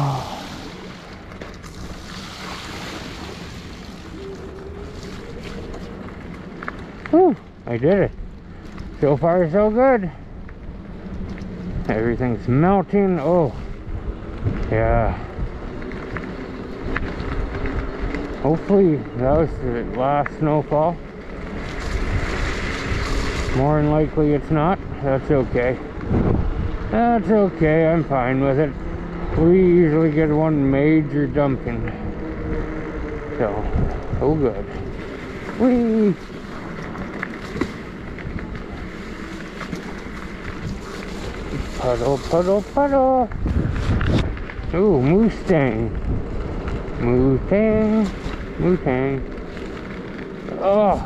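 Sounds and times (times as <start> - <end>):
low rumble: 0.0 - 51.0
tyres rolling on wet pavement: 0.0 - 51.0
wind on microphone: 21.4 - 29.8, 31.4 - 49.7.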